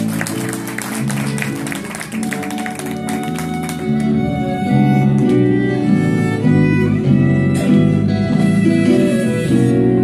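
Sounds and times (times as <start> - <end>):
bass guitar: 0.0 - 10.0
strummed guitars: 0.0 - 10.0
violin: 0.0 - 10.0.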